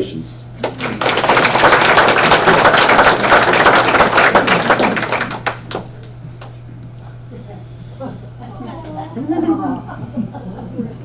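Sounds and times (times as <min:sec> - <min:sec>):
audience applauding: 0:00.6 - 0:06.5.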